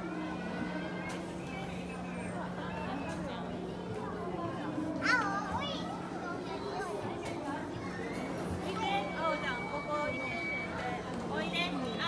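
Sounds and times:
crowd chattering in a hall: 0.0 - 12.0.

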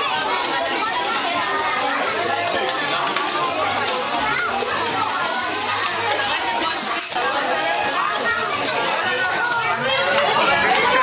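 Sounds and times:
young children talking and calling: 0.0 - 11.0.

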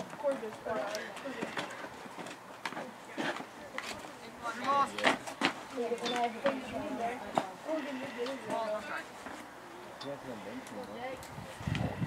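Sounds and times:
indistinct talk of spectators: 0.0 - 12.0.

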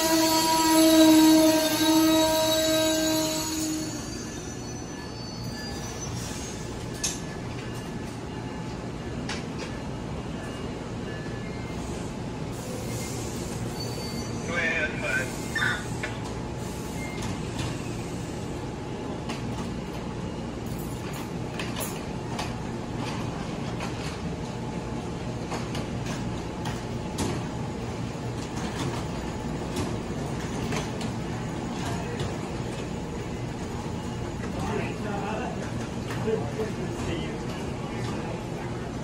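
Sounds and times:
train brakes and wheels squealing: 0.0 - 18.6
standing train hum and rumble: 0.0 - 39.0.

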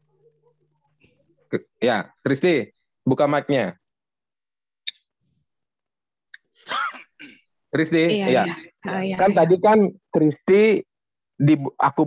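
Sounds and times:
person sneezing: 6.6 - 7.1.

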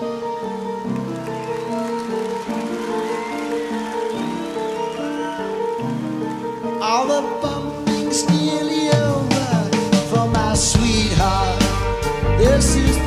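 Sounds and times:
slow piano playing: 0.0 - 13.0
person singing: 6.4 - 13.0.

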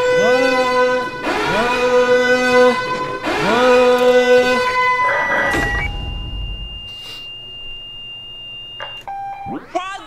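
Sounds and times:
high alarm-like beep tone: 4.4 - 9.6
brief lower tone: 5.0 - 9.5.

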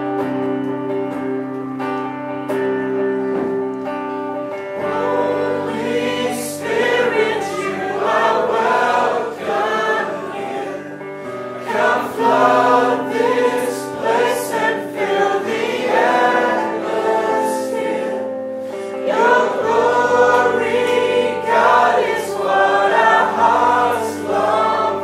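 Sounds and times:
electric guitar: 0.0 - 25.0
sustained held notes: 4.7 - 25.0
woman singing into microphone: 4.8 - 15.5.

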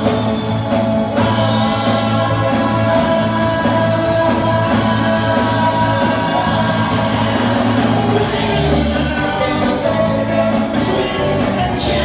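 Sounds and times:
drums: 0.0 - 12.0
electric guitars: 0.0 - 12.0
person singing: 0.0 - 12.0.

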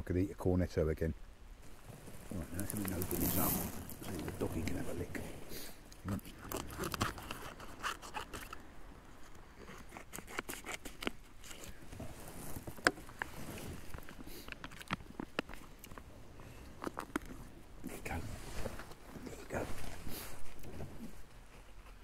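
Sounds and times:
foil food pouch crinkling: 6.3 - 8.6, 12.4 - 16.1.

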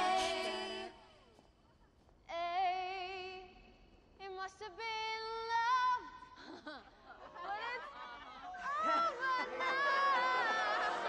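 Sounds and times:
woman singing with vibrato: 0.0 - 1.1
women's a cappella group singing: 0.0 - 1.2, 8.5 - 11.0.

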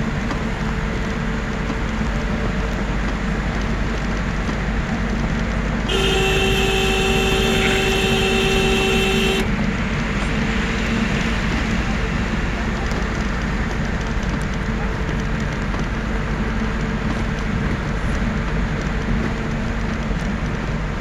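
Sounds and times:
engine and tyre rumble: 0.0 - 21.0
vehicle horn blast: 5.9 - 9.5.

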